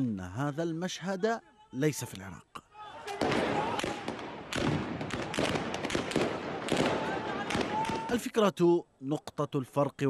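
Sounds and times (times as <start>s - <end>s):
crowd shouting: 2.7s - 4.4s, 5.9s - 8.2s
gunshots cracking: 3.2s - 8.2s.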